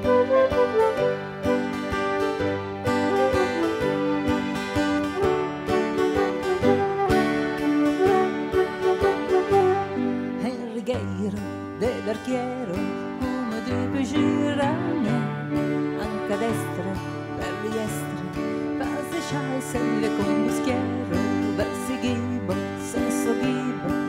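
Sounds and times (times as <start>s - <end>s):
wavering melody line: 0.0s - 10.2s
keyboard playing a tune: 0.0s - 10.8s
acoustic guitar: 0.0s - 24.0s.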